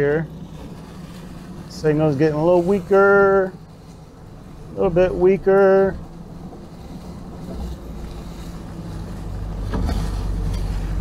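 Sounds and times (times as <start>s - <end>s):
truck engine and tyre rumble: 0.0s - 11.0s.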